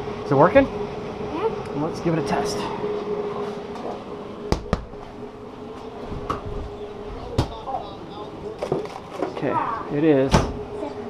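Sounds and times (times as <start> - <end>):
cooler fan humming: 0.0 - 11.0.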